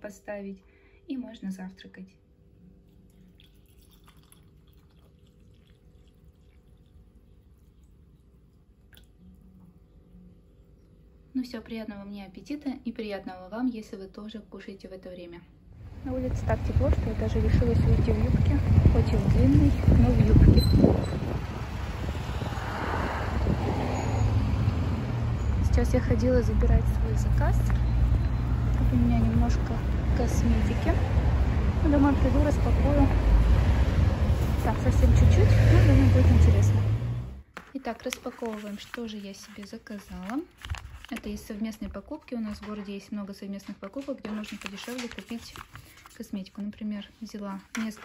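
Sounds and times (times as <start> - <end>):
water trickling into a glass: 2.8 - 10.2
light water drips: 2.8 - 11.1
faint engine hum: 15.8 - 22.4, 23.4 - 37.4
road traffic rumble: 15.8 - 37.5.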